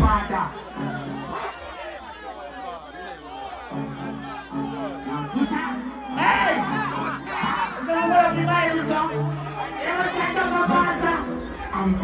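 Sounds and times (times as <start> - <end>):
music playing: 0.0 - 1.7, 3.5 - 12.0
crowd: 0.0 - 12.0
man shouting into a microphone: 4.0 - 12.0.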